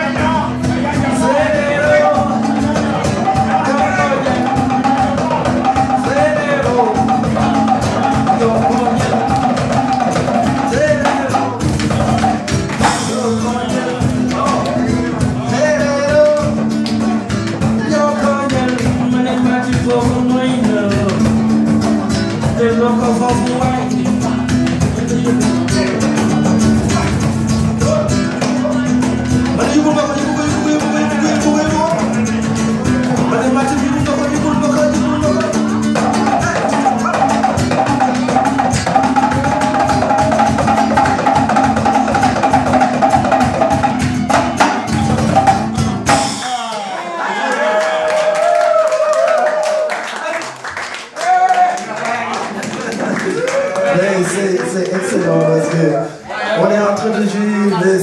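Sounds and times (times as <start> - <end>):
percussion strokes: 0.0 - 46.6
acoustic guitar playing: 0.0 - 47.1
djembe hand drum hits: 2.2 - 13.3, 35.2 - 46.5.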